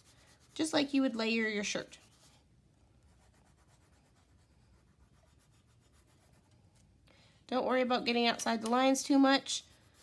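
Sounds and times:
crayon scratching on paper: 0.0 - 2.4, 3.0 - 6.8.

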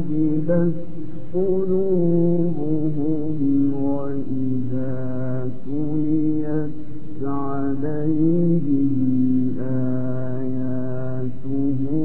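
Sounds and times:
man chanting melodic recitation: 0.0 - 12.0.

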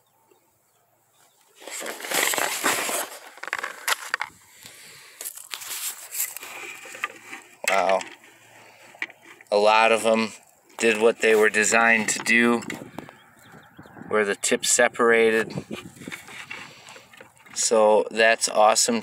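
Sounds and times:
cardboard crinkling and tearing: 1.5 - 7.4.

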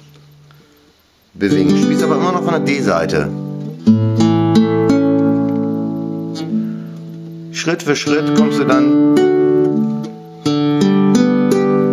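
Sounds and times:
nylon-string guitar chord plucked: 0.0 - 11.9.

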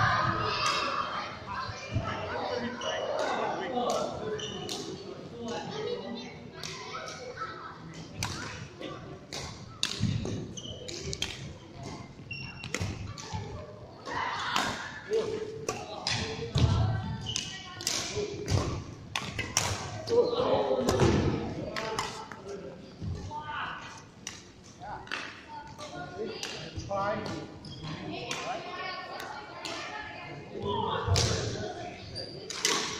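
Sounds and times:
players' voices: 0.0 - 32.9
rackets hitting shuttlecock: 9.3 - 12.0, 12.6 - 13.5, 14.4 - 20.0, 32.5 - 32.9.

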